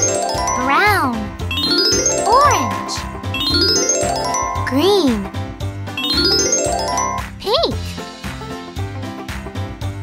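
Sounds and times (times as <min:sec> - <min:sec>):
children's background music: 0:00.0 - 0:10.0
upward sweeping sparkle chimes: 0:01.5 - 0:04.7.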